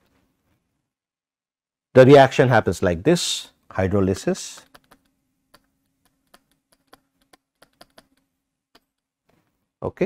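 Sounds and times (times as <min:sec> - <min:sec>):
faint steady hum: 0:02.0 - 0:10.0
stylus tapping on tablet: 0:04.6 - 0:09.1.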